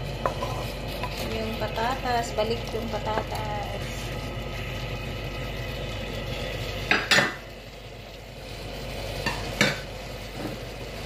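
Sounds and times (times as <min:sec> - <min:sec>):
potatoes sizzling in a pan: 0:00.0 - 0:11.0.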